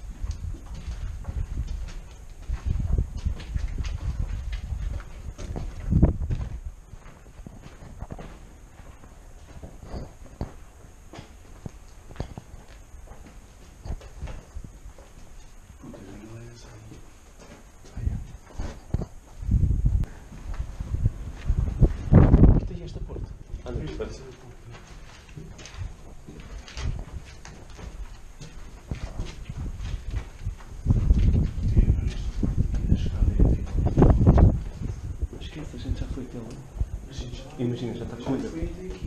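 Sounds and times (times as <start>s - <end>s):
heavy low bumps: 0.0s - 8.7s, 15.7s - 24.7s, 25.3s - 37.2s
footsteps on rubble-strewn concrete: 0.0s - 37.0s
person speaking: 35.4s - 39.0s.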